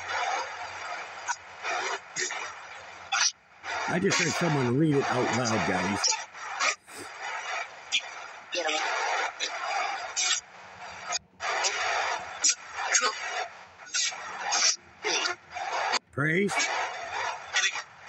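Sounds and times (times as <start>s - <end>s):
radio static bursts: 0.0s - 17.5s
broken radio voices: 3.7s - 17.8s.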